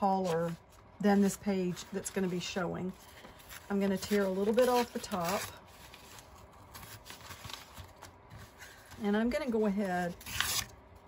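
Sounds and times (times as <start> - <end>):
paper pages rustling and crinkling: 0.0 - 10.7.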